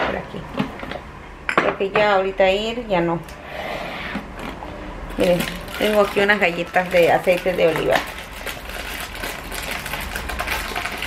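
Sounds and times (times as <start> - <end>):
packaging rustling and clicking: 5.2 - 11.0.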